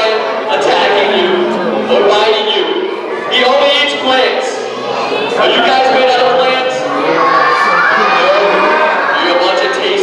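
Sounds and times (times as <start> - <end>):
crowd of children shouting: 0.0 - 10.0.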